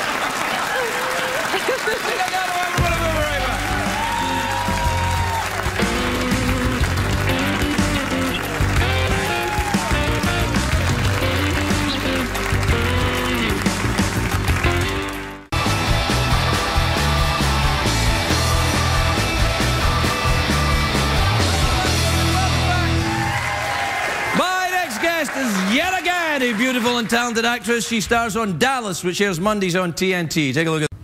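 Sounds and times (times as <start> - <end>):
band playing upbeat rock: 2.8 - 23.5.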